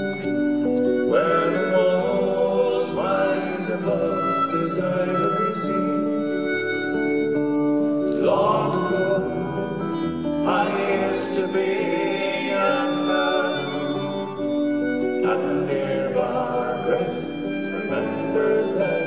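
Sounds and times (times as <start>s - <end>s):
acoustic folk music: 0.0s - 19.0s
strummed acoustic guitars: 0.0s - 19.0s
sustained melody line: 0.0s - 19.0s.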